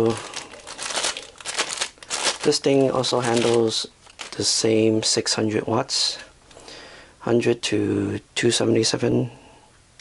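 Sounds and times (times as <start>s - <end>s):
plastic bag crinkling: 0.0s - 4.6s.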